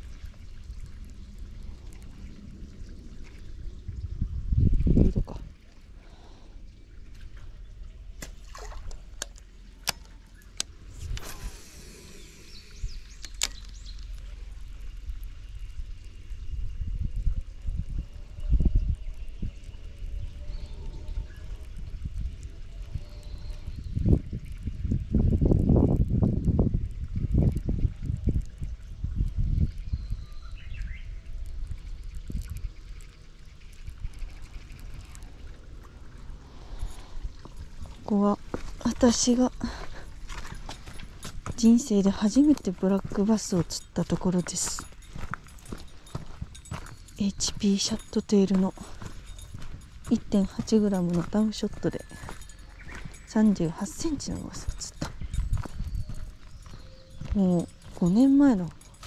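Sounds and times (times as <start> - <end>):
wind rumble on microphone: 0.0 - 59.0.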